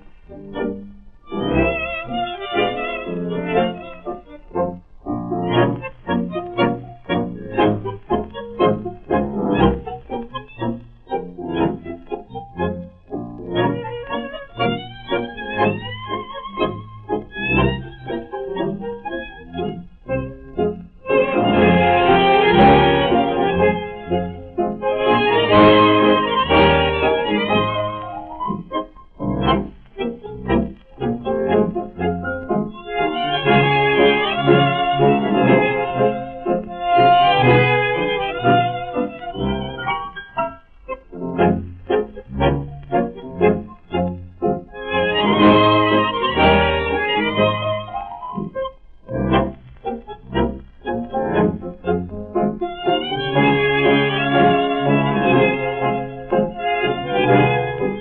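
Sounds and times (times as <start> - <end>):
instrumental orchestral score: 0.0 - 58.0.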